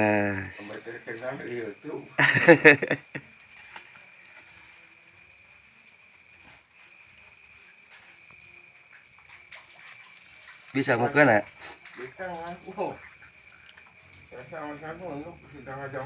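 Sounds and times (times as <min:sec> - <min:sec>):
night insects chirring: 0:00.0 - 0:16.0.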